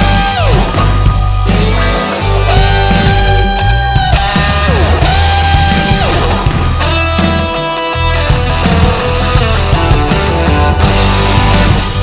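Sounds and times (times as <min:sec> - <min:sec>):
drum kit: 0:00.0 - 0:12.0
instrumental rock music: 0:00.0 - 0:12.0.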